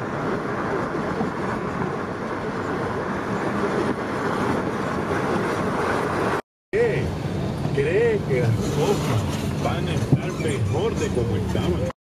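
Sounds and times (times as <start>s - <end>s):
car driving hum inside cabin: 0.0s - 11.9s.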